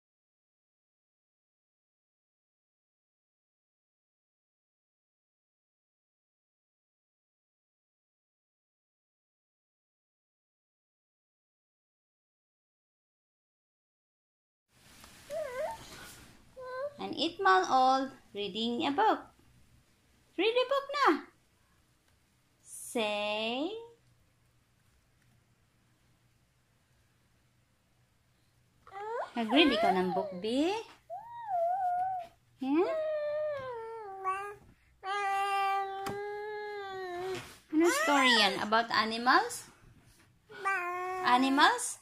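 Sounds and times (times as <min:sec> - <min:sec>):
baby vocalizing: 0:31.1 - 0:32.4, 0:33.2 - 0:38.6, 0:40.5 - 0:41.3.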